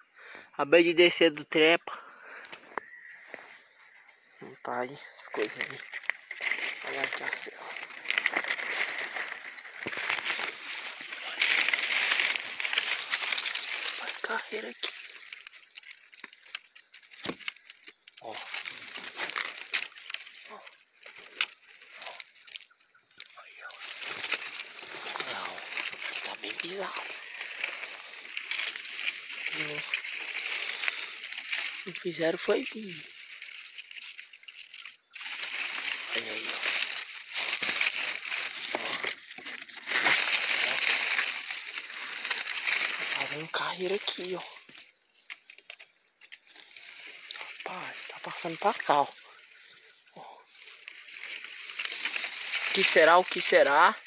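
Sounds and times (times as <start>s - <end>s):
undergrowth brushing: 2.3s - 54.0s
dry leaves crackling and rustling: 5.0s - 54.0s.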